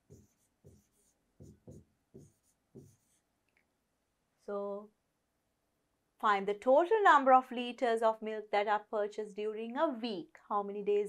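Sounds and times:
pen writing on a board: 0.0s - 3.3s.

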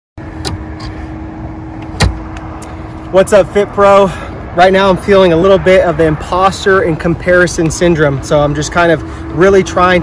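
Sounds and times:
constant low hum: 0.2s - 10.0s
outdoor background rumble: 0.2s - 10.0s.

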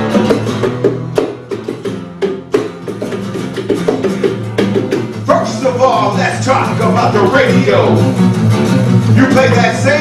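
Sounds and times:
acoustic guitars strumming chords: 0.0s - 10.0s.

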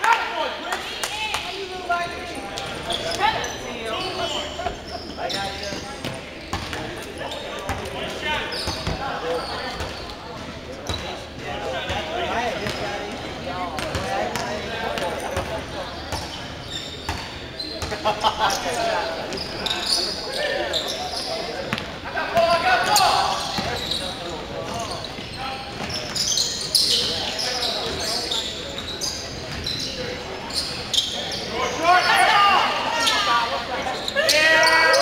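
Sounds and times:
players calling out: 0.0s - 35.0s.

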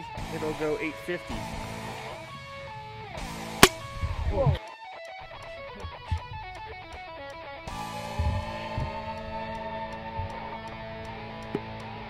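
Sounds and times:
guitar background music: 0.0s - 12.0s.

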